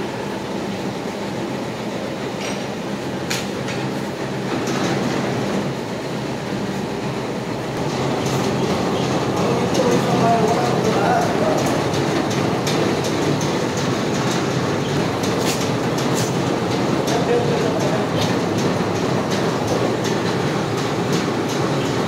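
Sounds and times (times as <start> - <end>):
pipe-lifting rig machinery running: 0.0 - 22.0.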